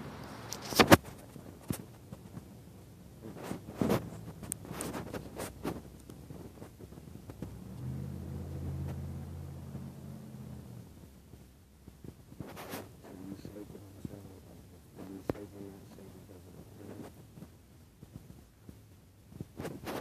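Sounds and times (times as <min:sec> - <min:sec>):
low motor hum: 0:02.2 - 0:12.2.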